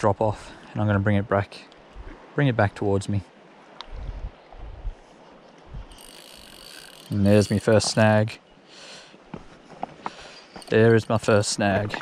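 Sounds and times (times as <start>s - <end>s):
wind buffeting microphone: 3.8s - 5.0s, 5.6s - 6.0s.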